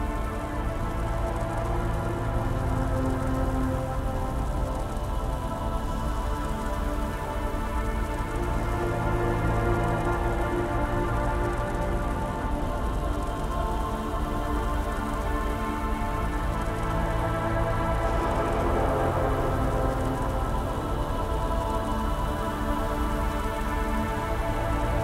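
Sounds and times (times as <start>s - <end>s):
low synth drone: 0.0s - 25.0s.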